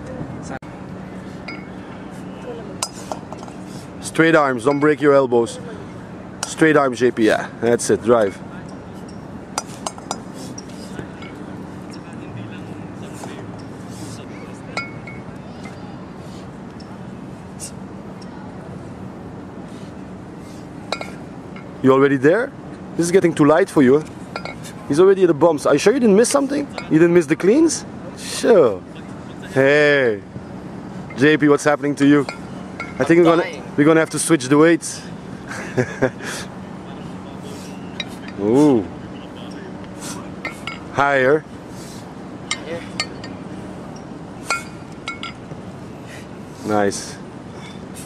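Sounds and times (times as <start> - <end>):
low background hum: 0.0 - 48.0
steady background noise: 0.0 - 48.0
kettlebells clinking together: 1.4 - 1.8, 14.7 - 15.8, 20.9 - 21.8, 24.3 - 24.7, 32.2 - 33.2, 40.4 - 41.0, 42.5 - 43.4, 44.0 - 45.4.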